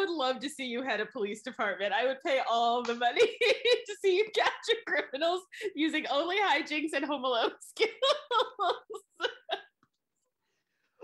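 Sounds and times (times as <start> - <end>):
woman laughing: 7.7 - 9.7.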